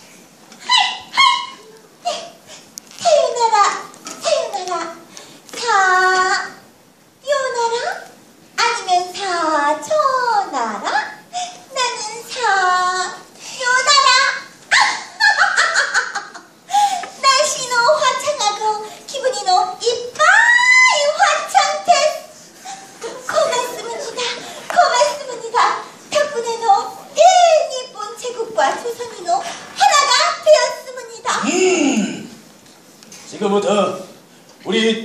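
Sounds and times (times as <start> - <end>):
short high-pitched cries: 0.6 - 2.3
high-pitched wordless vocal calls: 0.6 - 4.6, 31.2 - 32.4.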